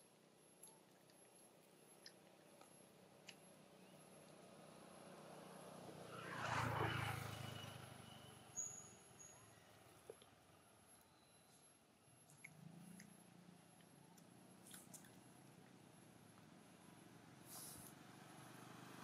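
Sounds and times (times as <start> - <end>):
vehicle driving past: 4.5 - 9.9, 17.0 - 19.0.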